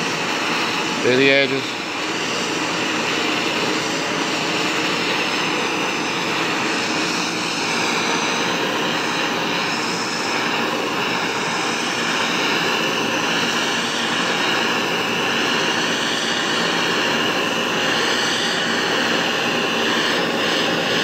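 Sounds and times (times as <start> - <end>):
gas torch hissing: 0.0 - 21.0.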